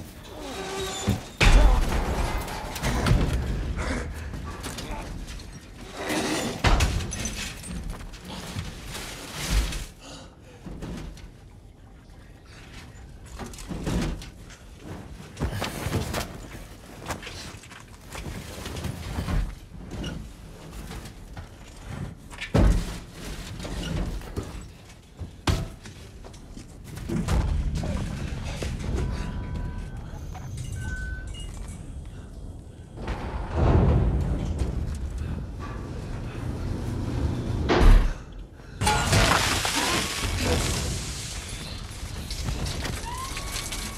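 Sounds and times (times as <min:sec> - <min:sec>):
rumbling noise: 0:27.0 - 0:43.9
heavy thuds and bangs: 0:32.9 - 0:41.1.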